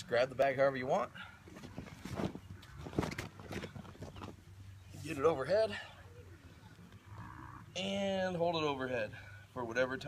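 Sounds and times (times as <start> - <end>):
sandbag rustling and shifting: 1.4 - 4.4.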